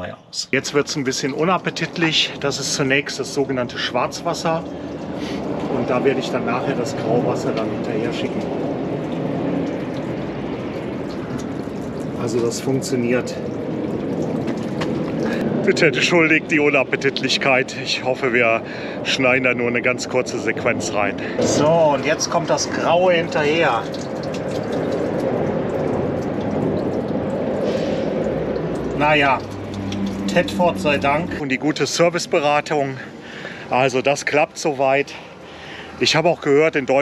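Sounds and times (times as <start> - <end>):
waste water pouring into drain: 1.1 - 15.4, 20.9 - 31.3.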